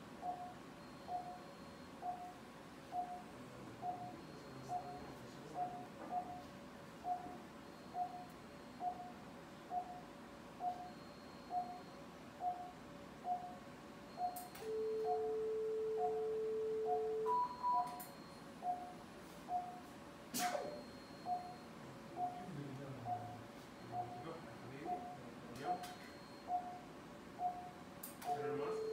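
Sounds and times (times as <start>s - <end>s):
patient monitor beeping: 0.2s - 28.9s
sharp click: 20.3s - 20.8s.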